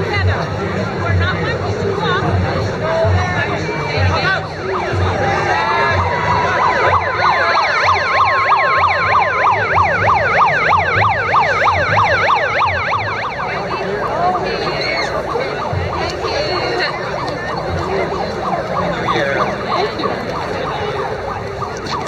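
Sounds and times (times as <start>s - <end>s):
crowd voices: 0.0s - 22.0s
emergency vehicle siren: 1.1s - 22.0s.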